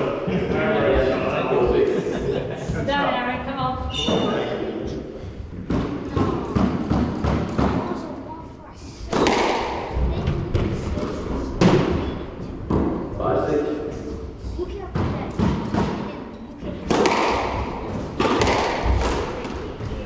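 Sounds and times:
squash ball strikes echoing: 5.5s - 8.2s, 9.0s - 13.2s, 14.9s - 20.0s.

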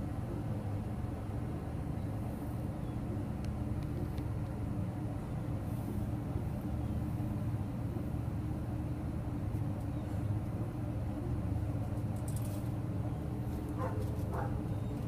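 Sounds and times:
steady low rumble with hum: 0.0s - 15.0s.

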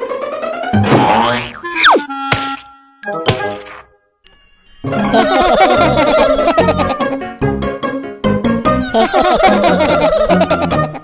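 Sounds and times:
cartoon boing thunk: 0.8s - 2.6s
cartoon crash impact: 0.8s - 2.6s
children's music: 4.9s - 11.0s.

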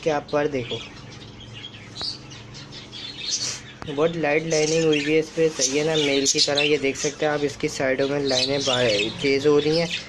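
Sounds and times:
budgerigars chirping: 0.0s - 10.0s.

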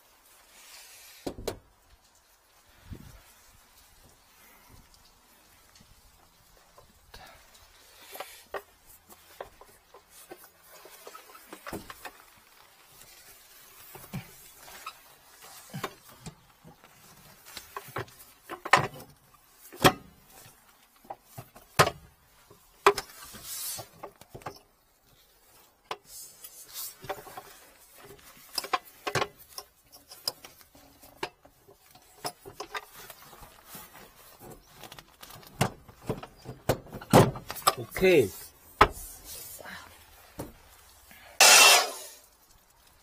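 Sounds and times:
clicks and knocks of plastic parts: 34.4s - 37.9s.

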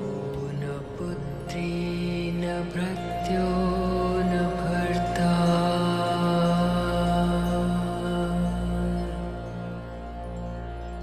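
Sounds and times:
slow ambient music: 0.0s - 11.0s.

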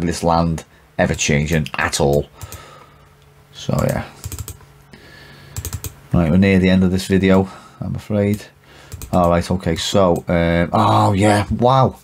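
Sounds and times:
computer keys clicking: 1.1s - 2.8s, 3.8s - 4.7s, 5.5s - 6.0s, 8.3s - 9.5s, 10.1s - 10.3s.

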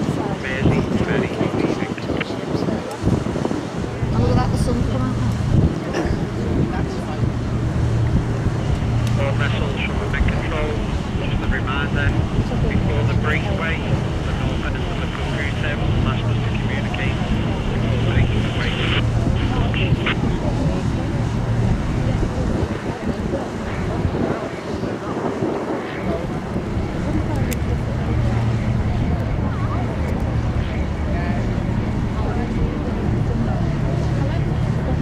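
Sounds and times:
boat engines droning: 0.0s - 35.0s
wind buffeting microphone: 0.0s - 35.0s.

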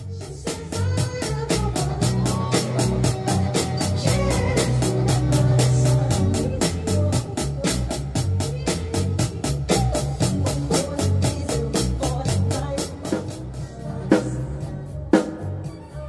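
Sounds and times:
backing song with organ and bass: 0.0s - 16.0s
drum kit beat: 0.0s - 16.0s.

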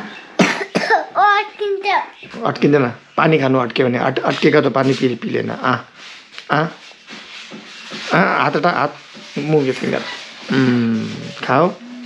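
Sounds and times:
child coughing: 0.4s - 1.5s
high-pitched child's voice: 0.7s - 2.3s.

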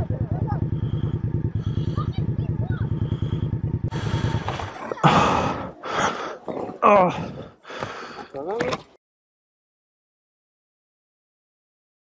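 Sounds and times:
motorcycle engine idling: 0.0s - 6.2s
motorcycle crash and scrape: 3.9s - 5.4s.

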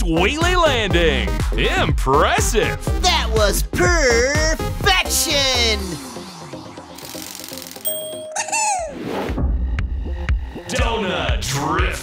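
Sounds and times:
background music: 0.0s - 12.0s
bell-like ding: 7.8s - 8.8s.

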